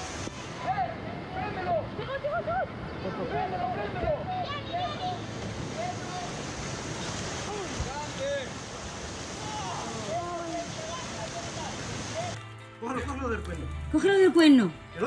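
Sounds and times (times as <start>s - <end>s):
river rapids rushing: 0.0s - 15.0s.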